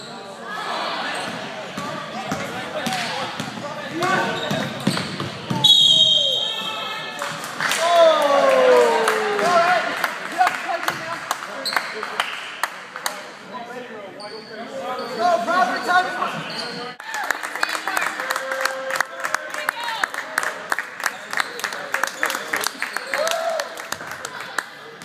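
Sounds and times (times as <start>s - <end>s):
basketball bouncing on court: 1.8s - 5.6s.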